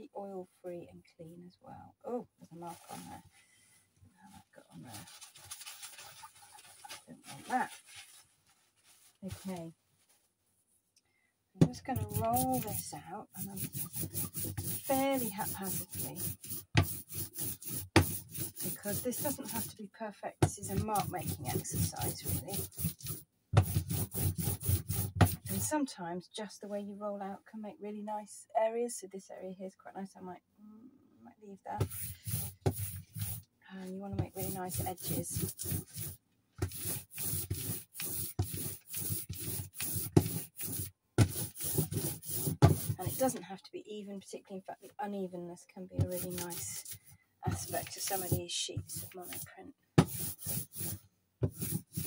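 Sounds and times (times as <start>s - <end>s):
roller rolling out tacky paint: 11.9s - 19.8s, 20.6s - 25.7s, 34.2s - 43.4s, 47.5s - 52.0s.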